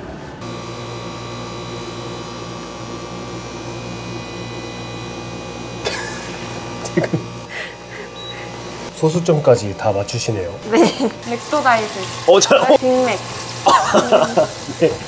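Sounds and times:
electrical machine hum: 0:00.0 - 0:15.0.

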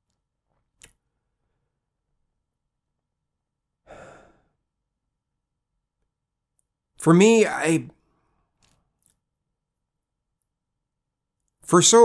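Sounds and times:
man sighing: 0:03.8 - 0:04.6.

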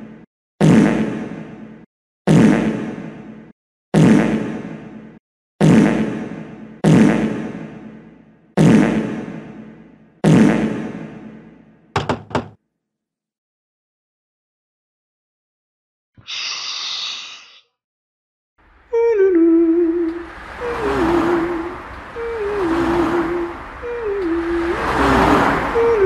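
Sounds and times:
quick knocks: 0:12.0 - 0:12.6.

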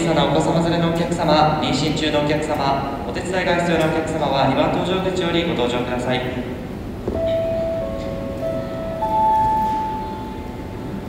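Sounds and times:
hum of terminal hall: 0:00.0 - 0:11.0
public address chime: 0:07.1 - 0:11.0.

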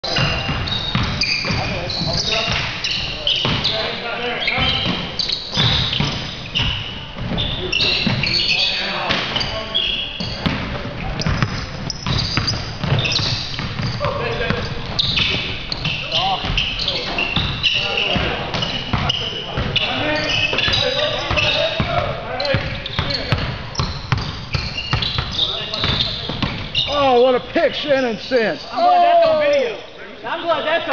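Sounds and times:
players' voices: 0:00.0 - 0:30.9
sneakers squeaking on wooden floor: 0:00.0 - 0:30.9
basketball bouncing: 0:00.1 - 0:02.8, 0:03.4 - 0:03.7, 0:04.6 - 0:08.2, 0:10.2 - 0:26.8.

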